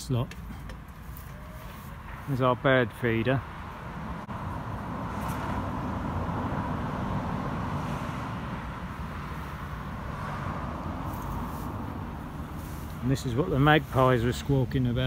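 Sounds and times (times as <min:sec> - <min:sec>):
distant road traffic: 0:00.0 - 0:15.0.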